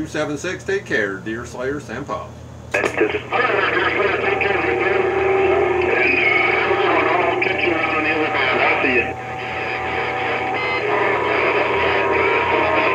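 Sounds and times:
garbled radio voices: 0:02.7 - 0:12.9
radio static: 0:02.7 - 0:12.9.

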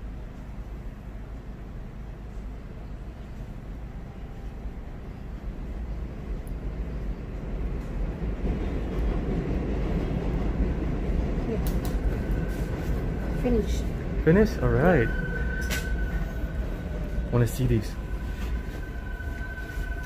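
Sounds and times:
subway train rumble: 0:00.0 - 0:20.0.

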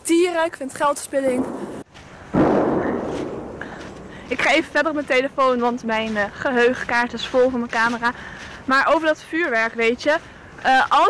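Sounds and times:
distant firework bang: 0:01.4 - 0:04.4.

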